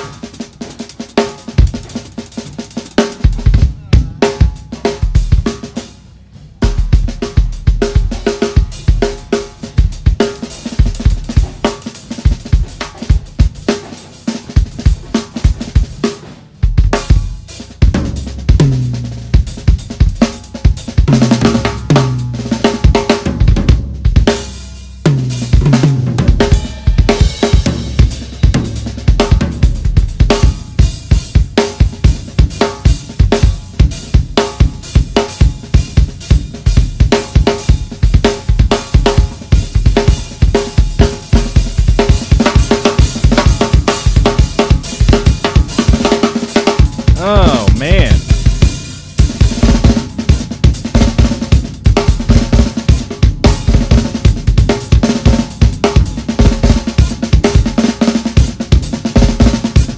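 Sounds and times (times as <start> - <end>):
drum kit solo: 0.0 - 59.9
rapid bass drum strokes: 0.0 - 59.9
snare drum strokes: 11.3 - 16.6.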